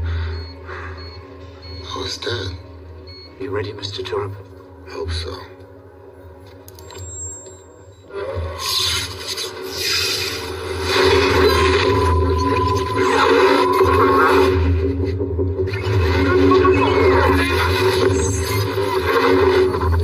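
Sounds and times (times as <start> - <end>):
low electronic drones: 7.7 - 20.0.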